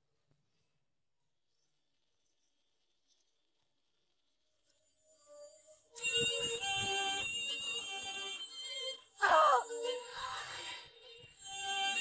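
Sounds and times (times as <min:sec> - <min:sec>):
woman wailing cry: 0:09.2 - 0:09.7.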